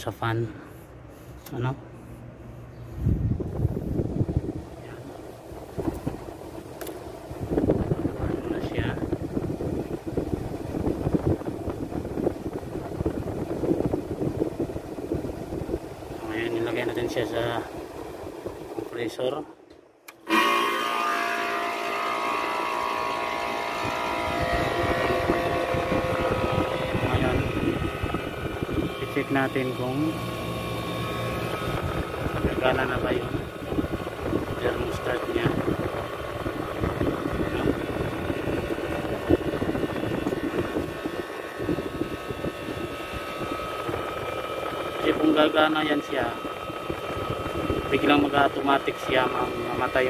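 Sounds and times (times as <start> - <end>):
low rough rumble: 0.0 - 18.8, 22.4 - 50.0
air conditioner humming: 0.0 - 50.0
thin high tone: 20.2 - 31.3.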